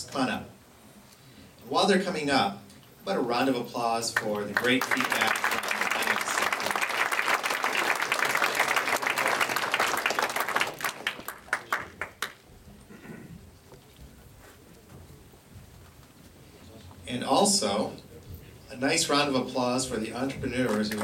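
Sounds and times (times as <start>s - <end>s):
audience applauding: 4.2s - 12.5s, 20.7s - 21.0s.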